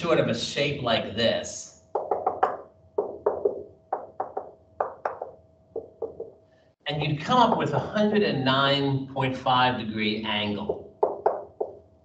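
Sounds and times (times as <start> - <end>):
marker tapping on whiteboard: 1.9 - 6.4, 10.7 - 11.8.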